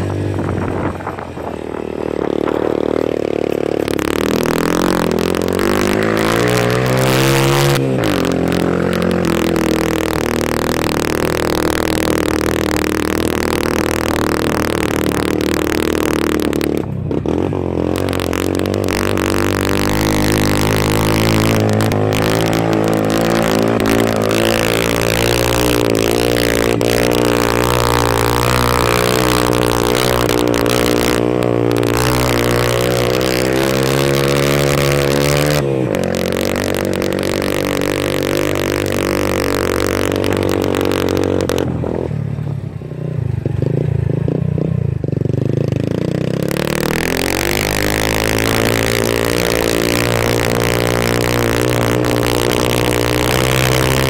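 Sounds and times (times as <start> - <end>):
motorcycle engine climbing: 0.0 - 54.0.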